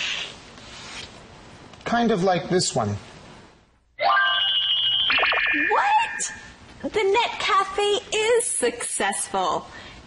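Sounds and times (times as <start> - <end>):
bright electronic chime with trill: 4.0 - 5.8.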